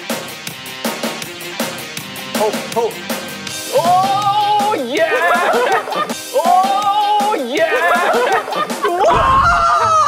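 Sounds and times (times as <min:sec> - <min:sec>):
young men laughing loudly: 0:03.7 - 0:10.0
high-pitched held laugh: 0:05.0 - 0:06.2.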